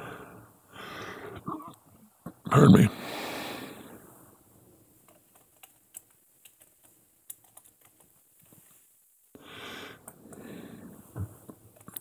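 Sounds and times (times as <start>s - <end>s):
keyboard typing: 5.1s - 8.2s.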